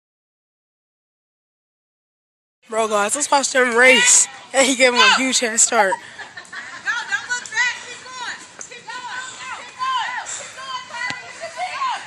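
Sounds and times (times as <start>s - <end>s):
children shouting: 3.7s - 6.0s, 7.5s - 12.0s.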